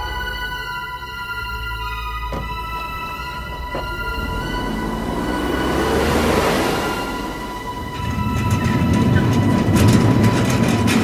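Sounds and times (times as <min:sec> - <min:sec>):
metal gate rolling rumble: 0:02.3 - 0:11.0
metallic clattering: 0:07.2 - 0:11.0.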